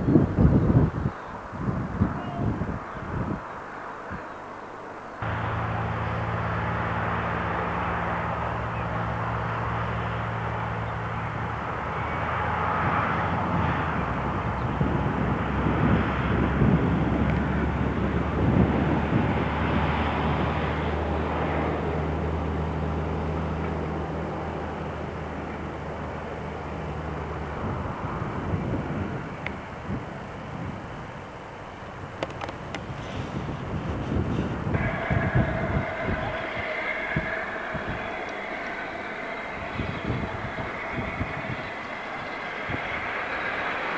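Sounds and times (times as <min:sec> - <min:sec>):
low engine hum: 0:05.2 - 0:43.9
rushing vehicle noise: 0:05.2 - 0:43.9.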